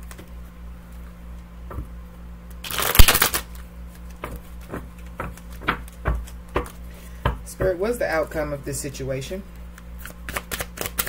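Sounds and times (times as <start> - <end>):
cards being shuffled: 2.6 - 6.8, 9.8 - 11.0.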